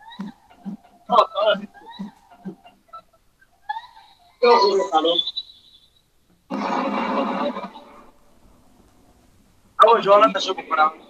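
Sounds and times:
person speaking: 0.0 - 3.0.

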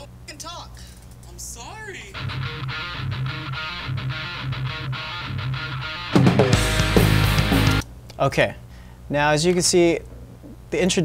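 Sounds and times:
rock song guitar and bass: 2.1 - 7.8.

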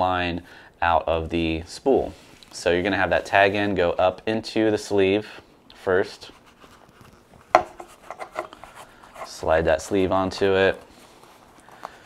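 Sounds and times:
neoprene rustling over spool: 1.4 - 5.0, 6.0 - 12.0.

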